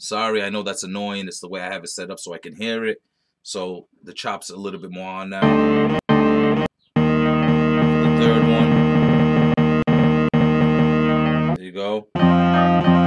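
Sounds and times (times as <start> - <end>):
sampled musical chord: 5.4 - 11.6.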